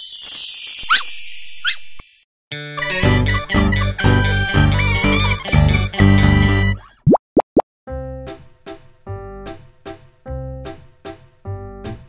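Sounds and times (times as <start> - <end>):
cheerful background music: 2.8 - 6.8.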